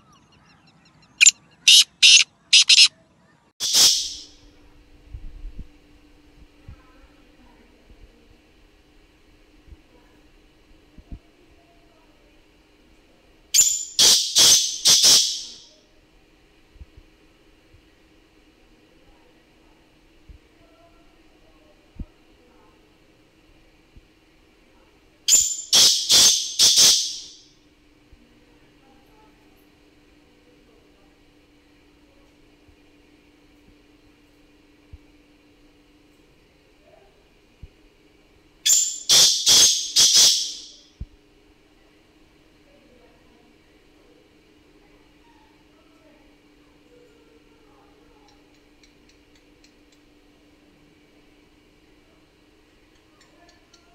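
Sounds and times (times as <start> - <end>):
bird harsh calling: 0.0 - 2.9, 3.6 - 4.4, 13.6 - 15.7, 25.3 - 27.4, 38.7 - 40.8.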